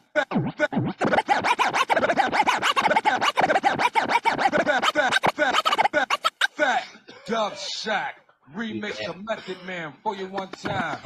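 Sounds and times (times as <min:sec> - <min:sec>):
vinyl record scratching: 0:00.0 - 0:06.8.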